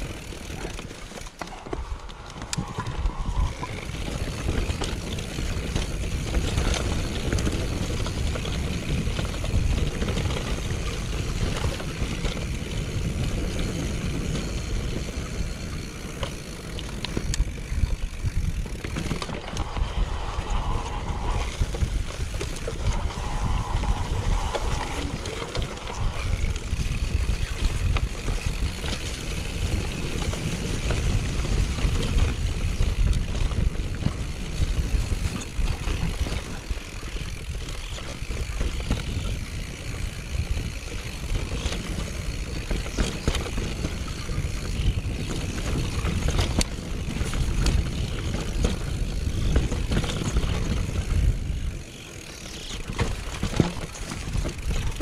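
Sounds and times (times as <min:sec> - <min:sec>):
bike clicking and rattling: 0:00.0 - 0:55.0
bike tyres rumbling on dirt: 0:00.0 - 0:55.0
wind on microphone: 0:01.5 - 0:55.0.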